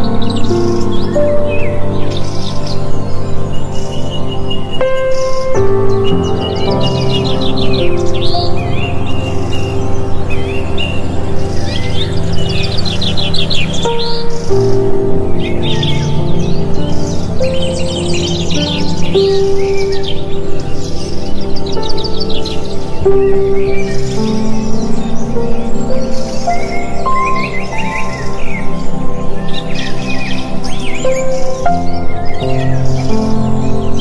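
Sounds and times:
birds chirping and trilling: 0.0s - 34.0s
calm music with held notes: 0.0s - 34.0s.

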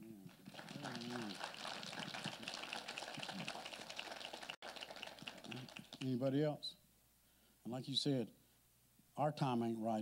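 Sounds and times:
congregation applauding: 0.0s - 6.2s.

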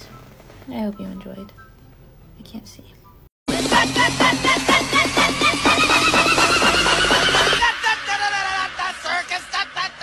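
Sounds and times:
electronic music with quick beats: 3.5s - 10.0s.

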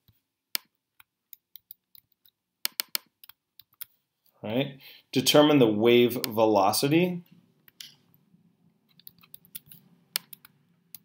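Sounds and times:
mouse clicks: 8.9s - 11.0s.

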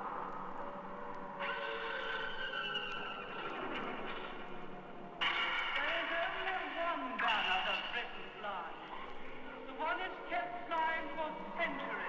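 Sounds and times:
vinyl crackle: 0.0s - 10.1s.

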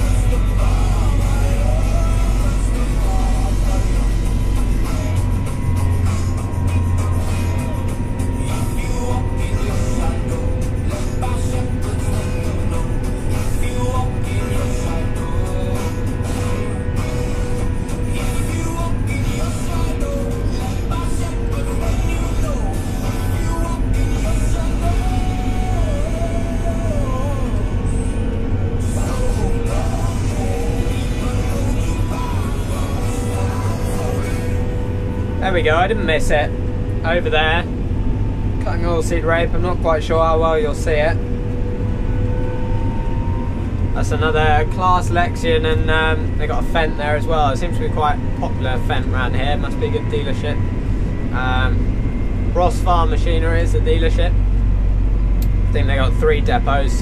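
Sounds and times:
radio music: 0.0s - 54.5s, 55.3s - 57.0s
tractor engine drone: 0.0s - 57.0s.

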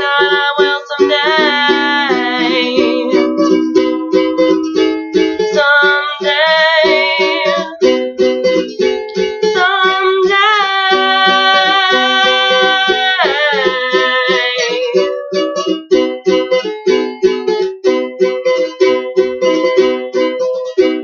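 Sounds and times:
woman singing with vibrato: 0.0s - 3.5s, 5.5s - 7.9s, 9.5s - 15.3s
ukulele strumming: 0.0s - 21.0s.

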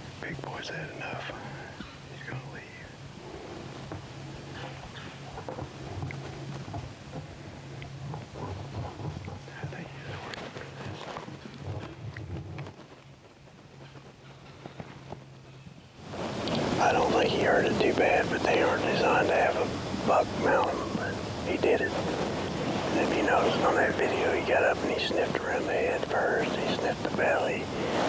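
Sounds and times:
faint steady hum: 0.0s - 28.0s
rustling: 3.2s - 16.8s
man talking loudly: 16.8s - 22.0s, 22.9s - 27.7s.

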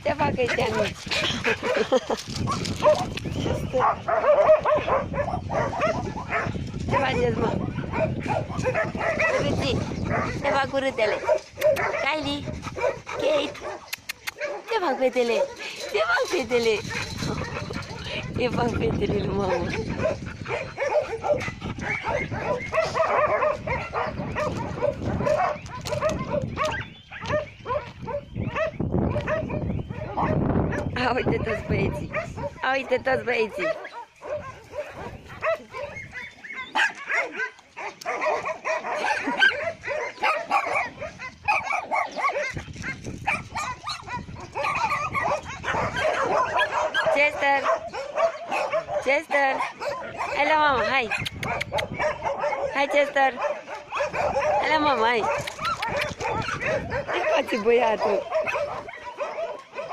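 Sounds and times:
dogs barking: 0.1s - 59.9s.

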